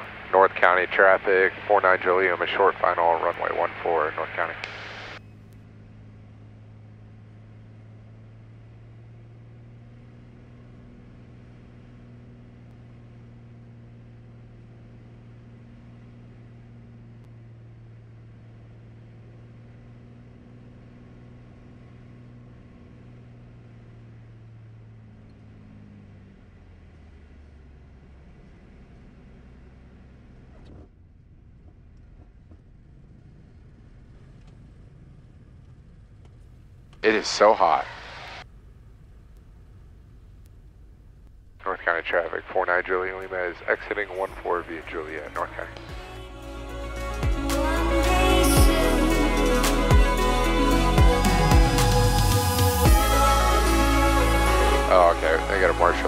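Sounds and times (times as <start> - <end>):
aircraft piston engine droning: 0.0 - 8.3, 32.8 - 56.0.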